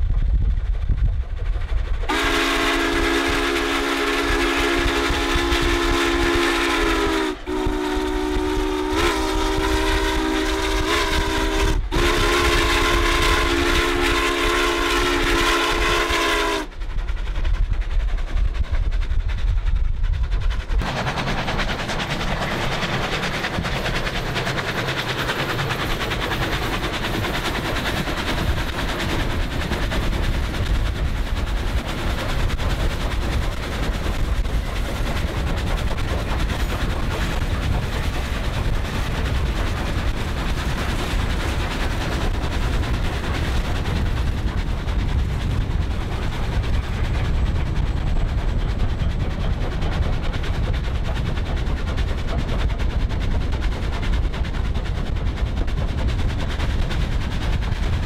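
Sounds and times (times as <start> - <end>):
rushing rumble of running train: 0.0 - 58.0
steam locomotive whistle blasts: 2.1 - 16.7.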